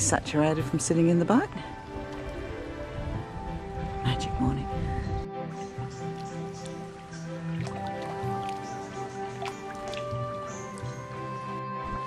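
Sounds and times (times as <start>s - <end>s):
soft music of held notes: 0.0s - 12.0s.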